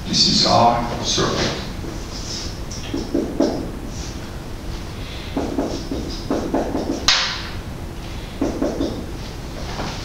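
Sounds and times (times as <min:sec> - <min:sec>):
marker writing on whiteboard: 0:02.8 - 0:03.8, 0:05.3 - 0:07.2, 0:08.4 - 0:09.1.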